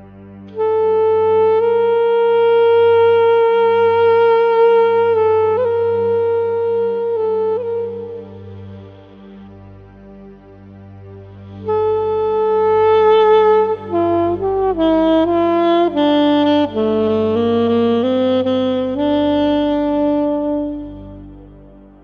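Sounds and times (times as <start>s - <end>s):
homemade saxophone melody: 0.0s - 10.1s, 11.4s - 22.0s
low steady drone: 0.0s - 22.0s.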